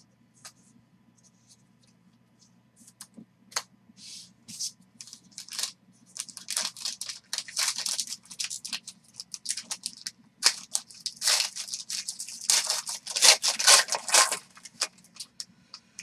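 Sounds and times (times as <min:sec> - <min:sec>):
foil wrapper crinkling and tearing: 0:05.0 - 0:15.4.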